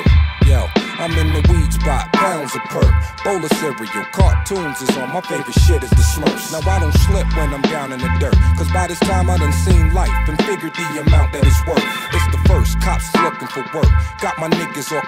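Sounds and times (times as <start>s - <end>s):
deep bass line: 0.0s - 2.2s, 5.6s - 10.4s, 11.1s - 13.2s
rapping over a beat: 0.0s - 15.0s.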